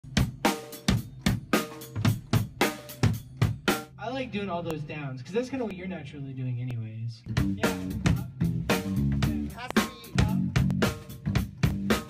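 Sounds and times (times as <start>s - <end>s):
drum kit beat: 0.0s - 5.0s, 7.2s - 12.0s.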